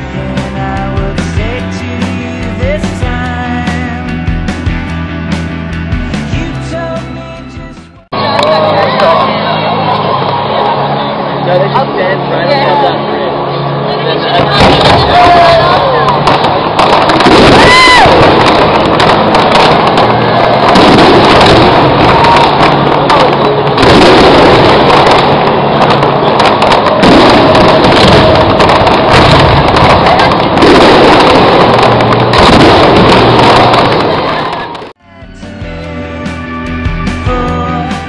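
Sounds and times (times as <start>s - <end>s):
fireworks blasts: 14.3s - 35.0s
fireworks bangs and crackle: 14.4s - 35.0s
rising firework whistle: 14.5s - 34.9s.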